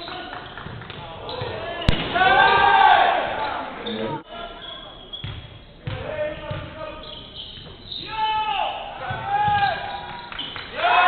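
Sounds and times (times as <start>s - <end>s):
sneakers squeaking: 0.0s - 10.9s
players' voices echoing: 0.0s - 11.0s
basketball bouncing on hardwood: 5.2s - 6.7s, 9.0s - 9.8s.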